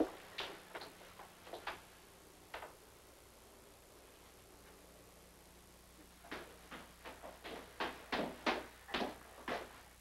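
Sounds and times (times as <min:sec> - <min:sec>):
footsteps on hard floor: 0:06.3 - 0:09.8.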